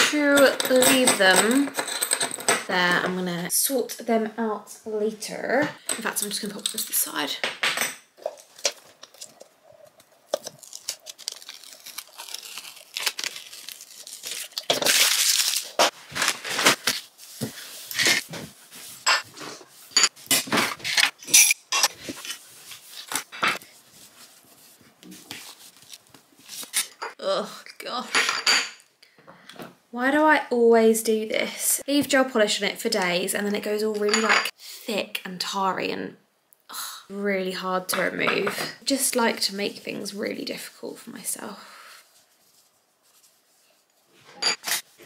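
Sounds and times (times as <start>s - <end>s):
tissue rustling: 8.3s - 20.0s, 22.0s - 26.8s, 42.0s - 44.2s.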